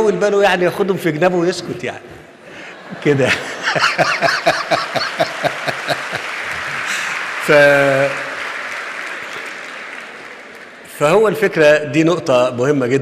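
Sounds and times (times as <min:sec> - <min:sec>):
man laughing: 0:02.9 - 0:06.2
audience applauding: 0:03.0 - 0:11.6.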